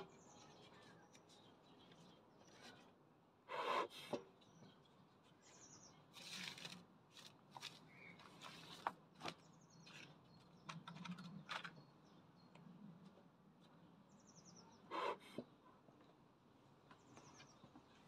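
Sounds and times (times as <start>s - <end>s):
birds chirping faintly: 0.0s - 6.6s, 7.4s - 18.0s
bellows puffs of air: 3.5s - 4.2s, 14.9s - 15.4s.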